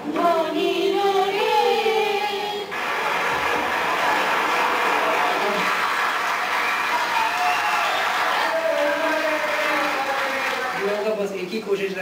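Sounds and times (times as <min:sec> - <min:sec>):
audience applauding: 0:02.7 - 0:11.2.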